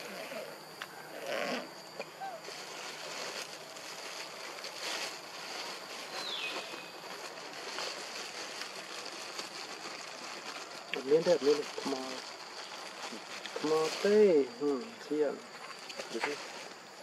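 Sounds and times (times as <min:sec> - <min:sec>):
forest ambience hiss: 0:00.0 - 0:17.0.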